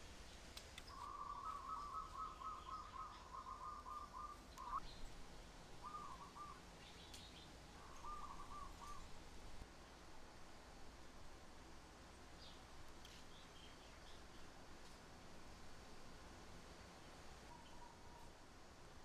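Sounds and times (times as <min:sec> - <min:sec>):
bird trilling call: 0:00.9 - 0:04.9, 0:05.8 - 0:06.6, 0:07.8 - 0:09.1.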